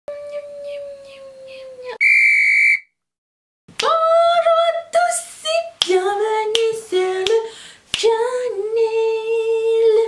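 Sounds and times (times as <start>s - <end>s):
loud high whistle tone: 2.0s - 3.0s
medium-pitched whistle tone: 2.0s - 3.0s.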